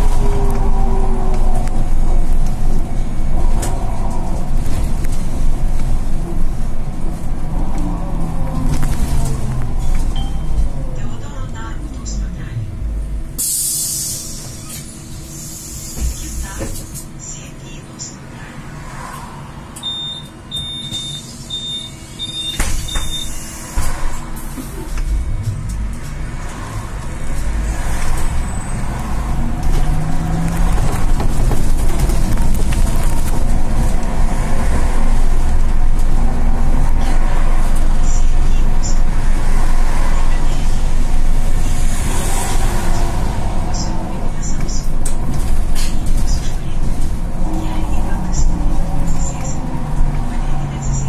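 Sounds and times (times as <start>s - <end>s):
electric drive rumble and road noise: 0.0s - 13.4s, 21.6s - 51.0s.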